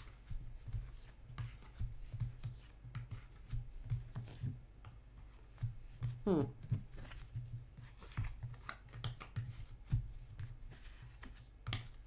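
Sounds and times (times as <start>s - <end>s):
cards shuffling with clicks: 6.6s - 9.8s.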